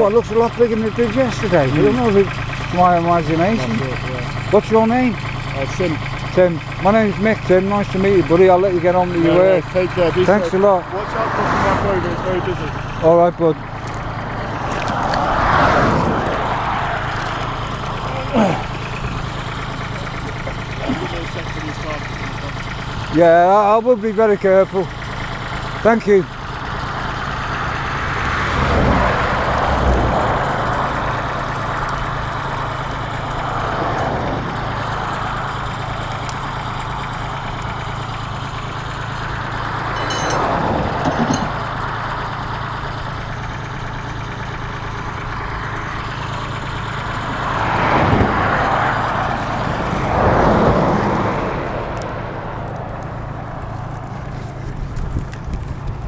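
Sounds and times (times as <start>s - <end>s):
engine idling: 0.0s - 56.0s
vehicles passing: 0.0s - 56.0s.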